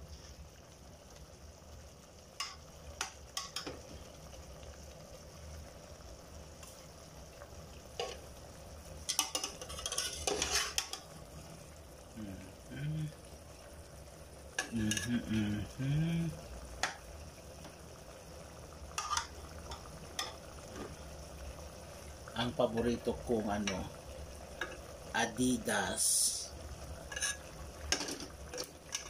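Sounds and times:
faint sizzle: 0:00.0 - 0:29.0
metal spoon scraping pot: 0:09.1 - 0:11.0, 0:27.1 - 0:27.4.

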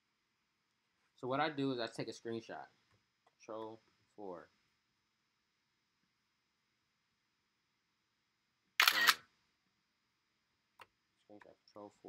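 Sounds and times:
camera shutter click effect: 0:08.8 - 0:09.2.

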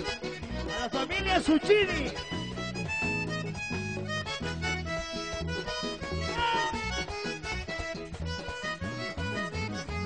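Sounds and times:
bass line: 0:00.0 - 0:10.0
button accordion melody: 0:00.0 - 0:10.0.

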